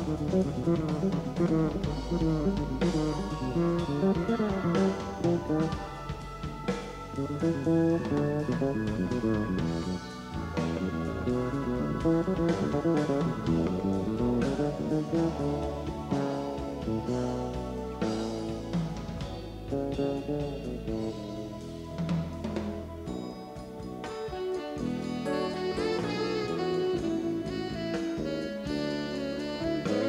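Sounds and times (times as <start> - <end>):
live band instrumental: 0.0 - 30.0
steady drum beat: 0.0 - 30.0.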